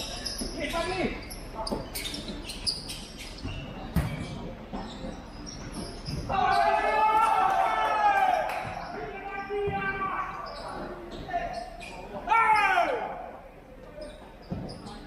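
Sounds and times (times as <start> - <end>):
ball kicked on court: 3.9 - 4.4
players shouting: 6.2 - 10.6, 12.2 - 13.4.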